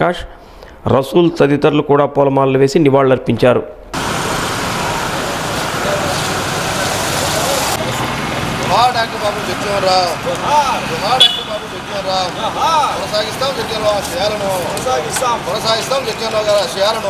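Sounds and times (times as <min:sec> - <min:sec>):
road traffic noise: 0:03.9 - 0:17.0
voices calling out: 0:04.0 - 0:17.0.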